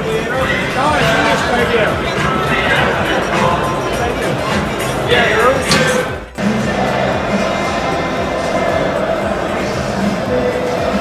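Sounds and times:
music: 0.0s - 11.0s
stadium crowd: 0.0s - 11.0s
voices: 0.0s - 11.0s.

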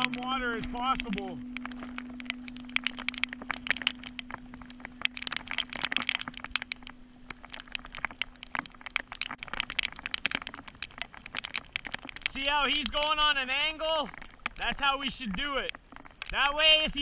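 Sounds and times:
steady low hum: 0.0s - 16.2s
rain and water splashing on kayak: 0.0s - 17.0s.

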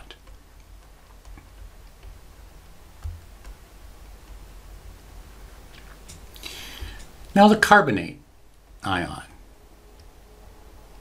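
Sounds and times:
low hum: 0.0s - 11.0s
stylus tapping on tablet: 0.2s - 4.4s.

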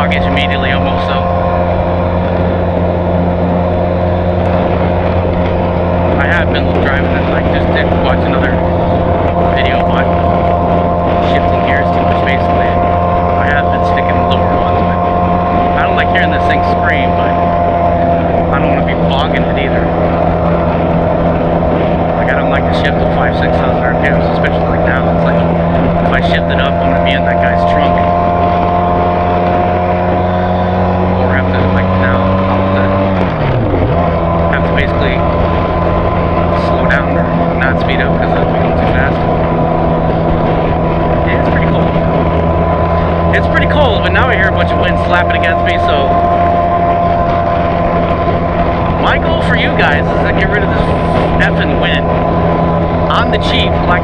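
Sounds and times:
motorcycle engine cruising: 0.0s - 54.0s
wind rushing past microphone: 0.0s - 54.0s.

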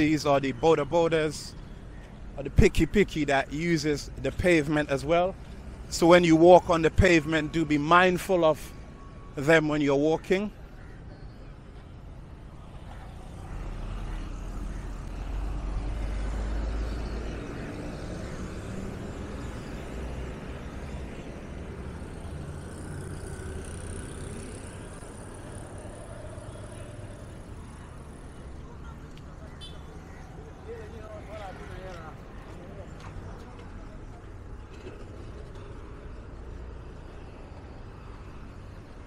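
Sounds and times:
road traffic passing: 0.0s - 39.0s
bus going by: 13.2s - 39.0s.

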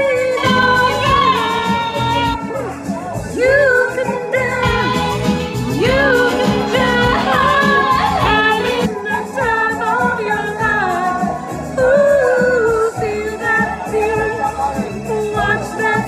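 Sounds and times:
instrumental backing music: 0.0s - 16.0s
person singing: 0.0s - 16.0s.

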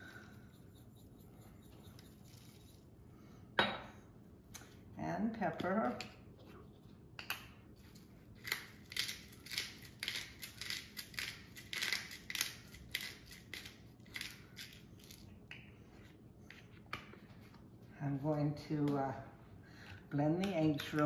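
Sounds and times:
pepper mill grinding: 0.0s - 2.9s, 8.4s - 15.3s.

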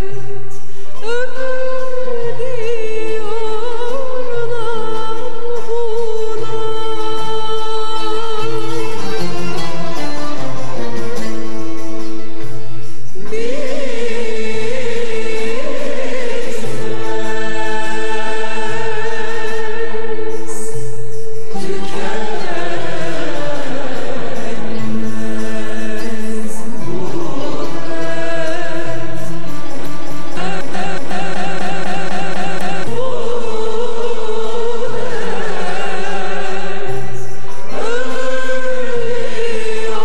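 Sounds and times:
woman singing: 0.0s - 40.0s
instrumental ensemble: 7.9s - 40.0s.

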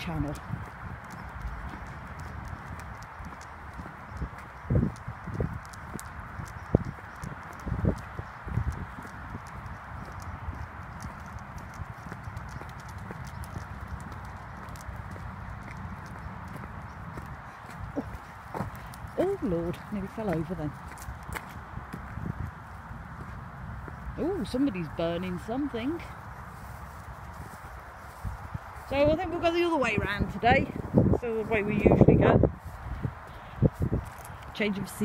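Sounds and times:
footsteps on tarmac: 0.0s - 35.0s
wind on microphone: 0.0s - 35.0s.

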